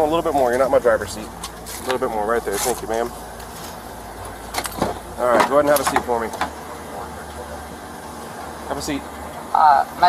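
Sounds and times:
motor vehicle humming: 0.0s - 10.0s.

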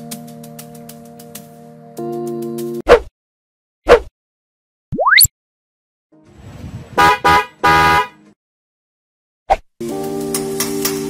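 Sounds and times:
horn honking: 7.0s - 8.4s.

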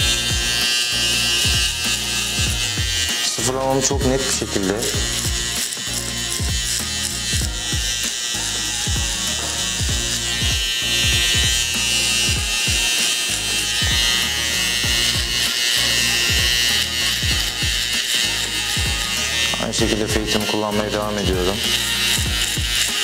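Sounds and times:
background music with steady beat: 0.0s - 23.0s
hair trimmer buzzing: 0.0s - 23.0s.

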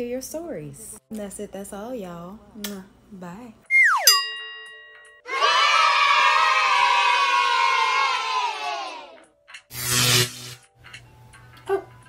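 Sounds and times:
children cheering: 5.3s - 9.2s.

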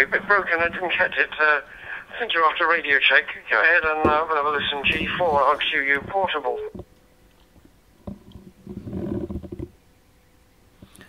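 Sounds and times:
garbled digital radio voice: 0.0s - 6.8s.

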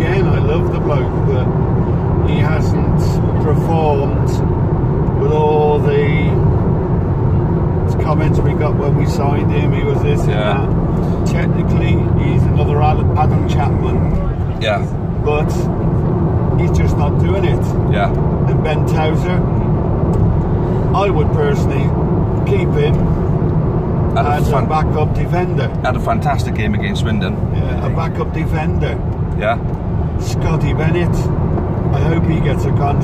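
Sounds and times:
people talking: 0.0s - 1.5s, 2.2s - 4.4s, 5.2s - 6.4s, 7.9s - 10.7s, 11.3s - 15.7s, 16.6s - 19.5s, 21.0s - 23.0s, 24.2s - 29.6s, 30.2s - 31.3s, 31.9s - 33.0s
car engine and tyres rumbling: 0.0s - 33.0s.

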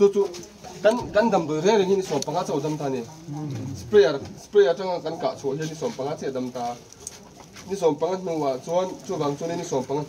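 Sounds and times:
man speaking: 0.0s - 6.8s.

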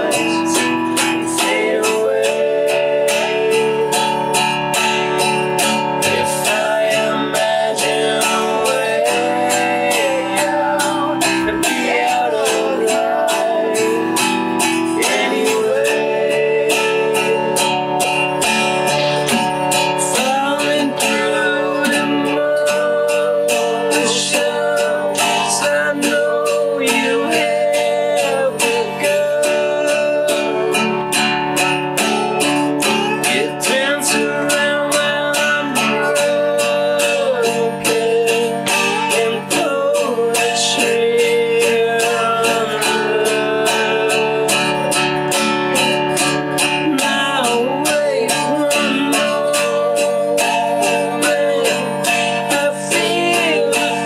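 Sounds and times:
acoustic guitars strumming: 0.0s - 54.0s
person singing: 0.0s - 54.0s.

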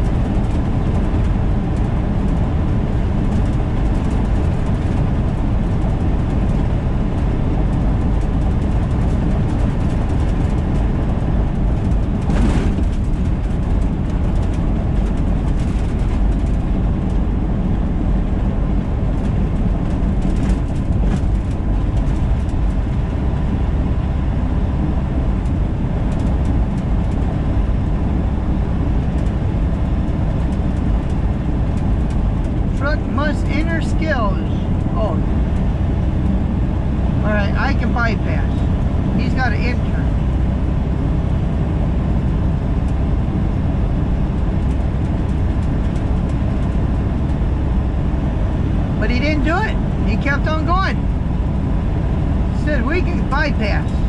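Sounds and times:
truck engine drone and road noise: 0.0s - 54.0s.

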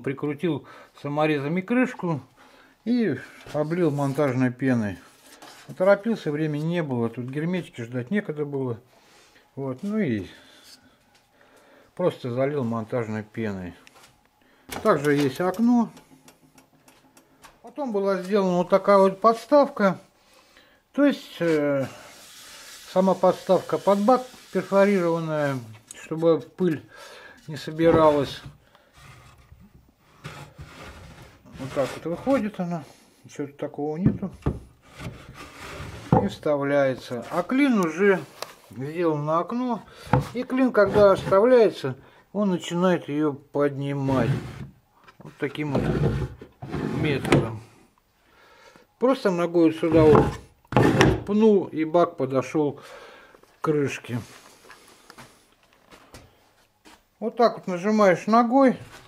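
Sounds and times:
wooden post scraping in steel tube: 21.2s - 26.0s, 27.5s - 32.6s, 34.4s - 38.4s, 39.9s - 41.5s, 45.4s - 47.6s, 49.8s - 51.3s.

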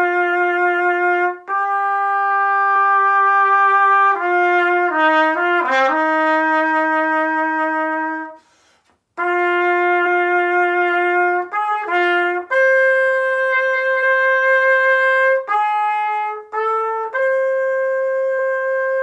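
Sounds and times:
solo trumpet playing: 0.0s - 19.0s.

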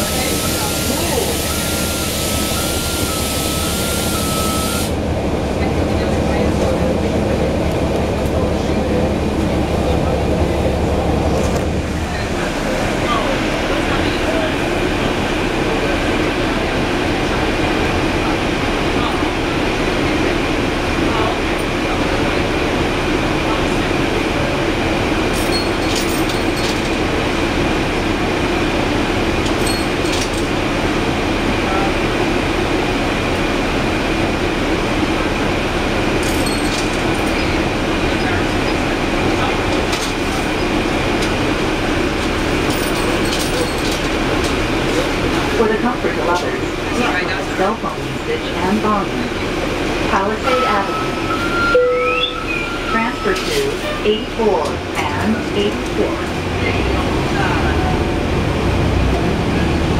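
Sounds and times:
bus engine drone: 0.0s - 59.9s.

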